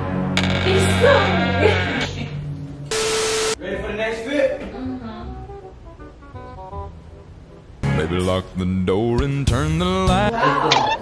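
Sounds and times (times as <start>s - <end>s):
static hiss burst: 2.9s - 3.6s
steady beep: 2.9s - 3.6s.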